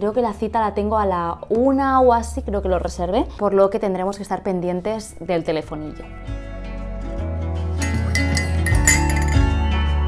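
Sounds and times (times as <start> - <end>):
background music with strong bass: 6.2 - 10.0
metal spoon clinking a ceramic mug: 7.8 - 9.5.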